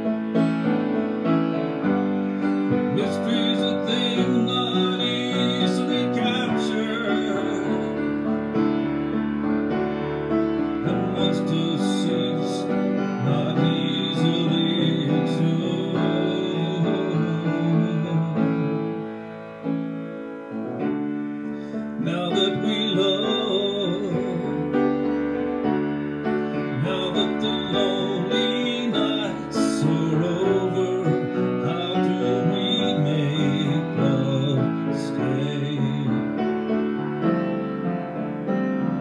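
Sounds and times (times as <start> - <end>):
solo grand piano ballad: 0.0 - 39.0.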